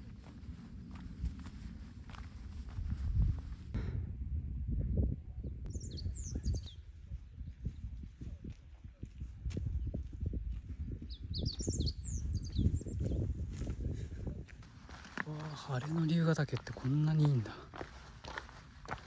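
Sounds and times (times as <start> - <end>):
songbird chirping: 5.6 - 7.7, 11.1 - 13.7.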